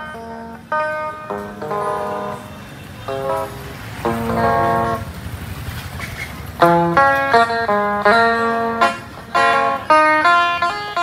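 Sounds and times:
electric guitar bolero melody: 0:00.0 - 0:05.2, 0:06.5 - 0:11.0
motorbike engine: 0:00.0 - 0:11.0.

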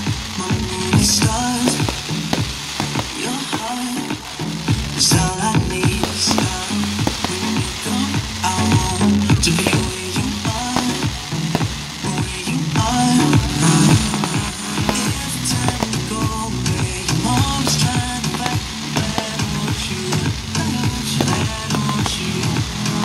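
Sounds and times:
fireworks crackling and popping: 0:00.0 - 0:23.0
music with sustained notes: 0:00.0 - 0:23.0.

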